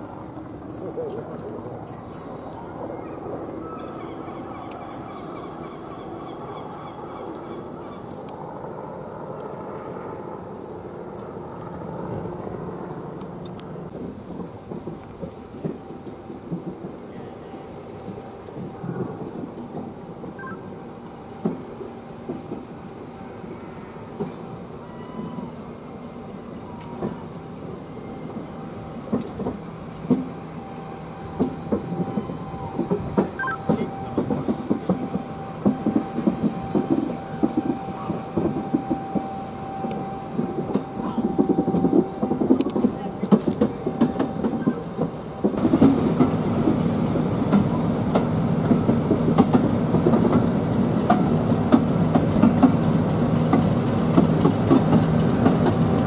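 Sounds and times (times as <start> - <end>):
train coaches rumbling: 0.0 - 56.0.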